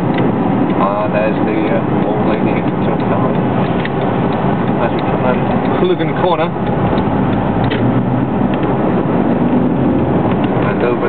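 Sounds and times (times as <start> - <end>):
car engine and road noise: 0.0 - 11.0.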